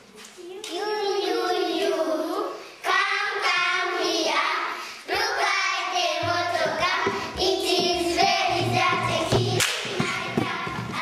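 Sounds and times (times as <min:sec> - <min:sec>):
young children singing: 0:00.4 - 0:11.0.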